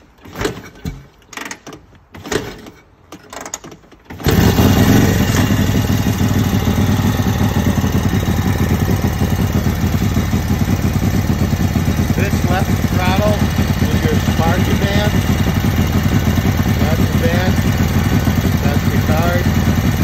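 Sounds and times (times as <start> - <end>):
motorcycle kick-start knocks: 0.2 - 20.0
motorcycle engine running: 4.2 - 20.0.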